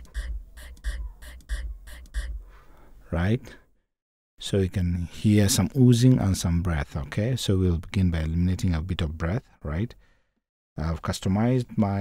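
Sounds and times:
faint rhythmic ticks: 0.0 - 2.9.

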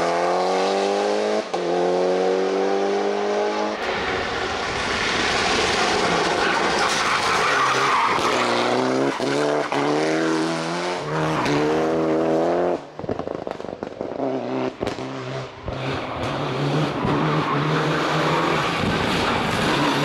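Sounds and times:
car engine at full throttle: 0.0 - 20.0
tyres skidding: 3.7 - 12.3, 14.8 - 20.0.

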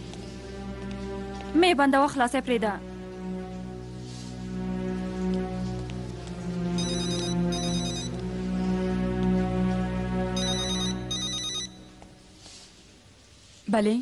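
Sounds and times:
background music: 0.0 - 13.4
mobile phone ringing: 6.8 - 8.2, 10.4 - 12.0.

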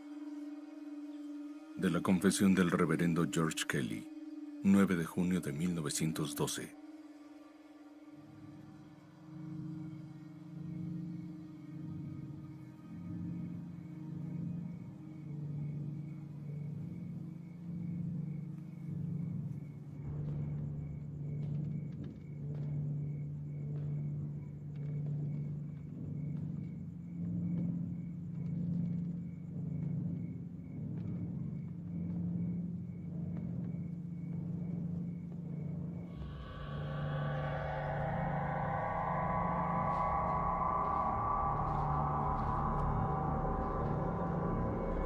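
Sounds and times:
low droning horror score: 0.0 - 45.0.

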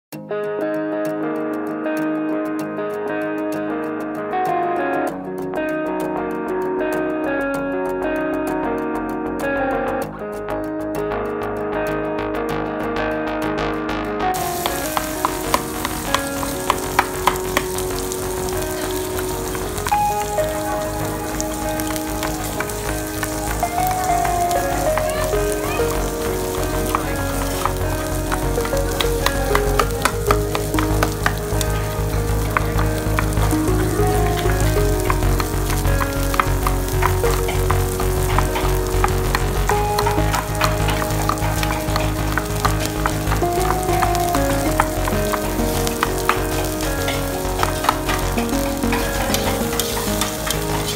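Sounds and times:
soft background music: 0.1 - 50.9
food sizzling on a griddle: 14.4 - 50.9
sharp clicks: 14.4 - 50.9.

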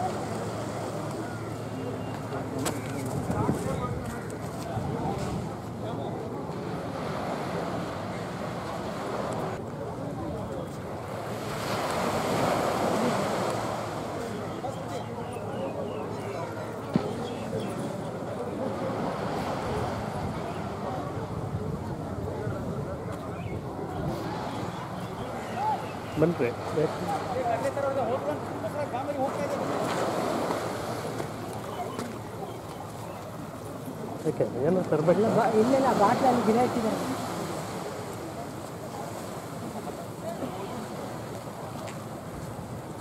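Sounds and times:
sea noise: 0.0 - 43.0
wind on microphone: 3.0 - 5.6.

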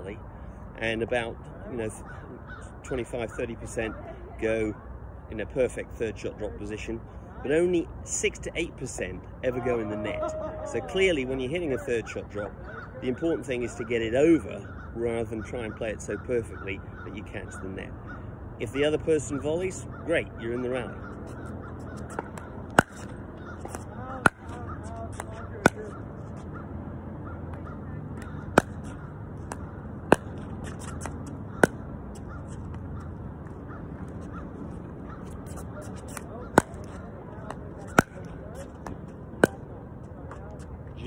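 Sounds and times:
low background hum: 0.0 - 41.0
paddle hitting plastic ball: 22.2 - 25.9, 28.5 - 31.8, 36.1 - 39.6.

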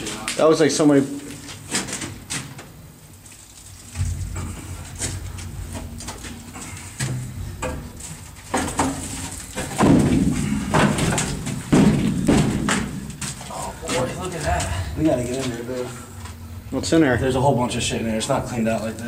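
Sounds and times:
low rumble: 3.9 - 8.3, 14.5 - 18.8
sheet metal clanking and scraping: 3.9 - 18.8.

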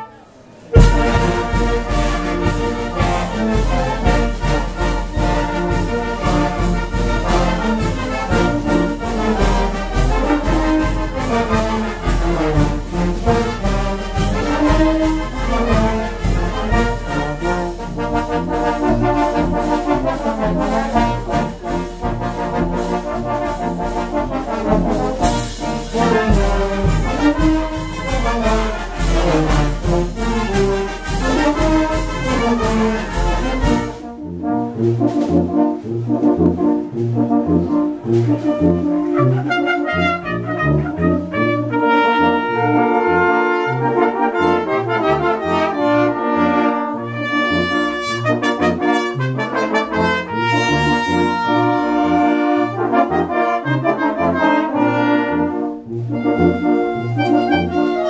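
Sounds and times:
brass band playing: 0.0 - 58.0
snare and bass drum beat: 0.8 - 34.1.

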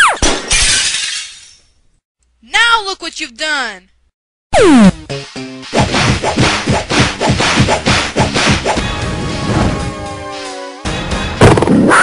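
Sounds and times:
glass shattering crash: 0.2 - 1.7.

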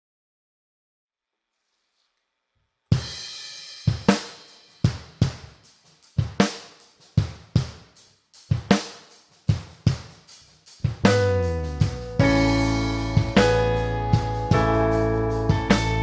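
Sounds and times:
drum kit playing steady beat: 2.9 - 16.0.

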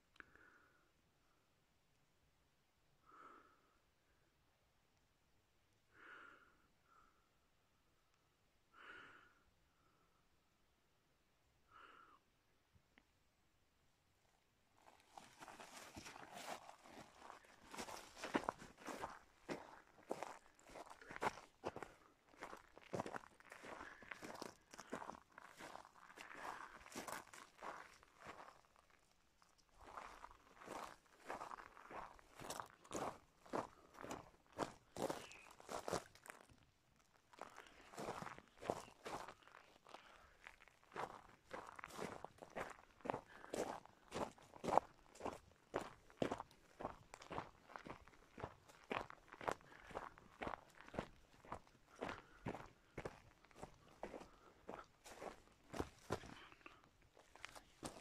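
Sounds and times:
footsteps on pine needles and gravel: 14.8 - 28.6, 29.8 - 36.4, 37.4 - 40.2, 41.0 - 56.6.

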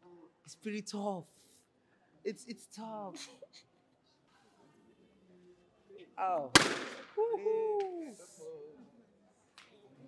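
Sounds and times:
balloon bursting: 6.6 - 7.1.

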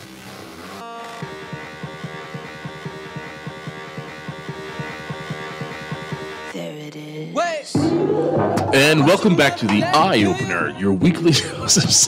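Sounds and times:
droning instrumental music: 1.2 - 6.6.

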